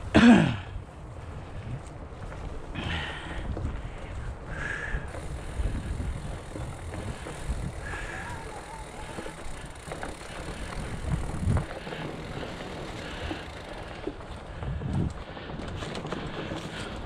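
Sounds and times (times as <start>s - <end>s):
bike tyres rumbling on dirt trail: 0.0s - 17.0s
bike knocking and rattling: 0.1s - 17.0s.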